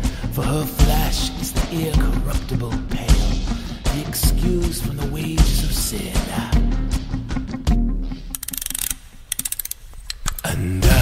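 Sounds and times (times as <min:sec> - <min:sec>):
clockwork ratcheting clicks: 0:08.3 - 0:10.6.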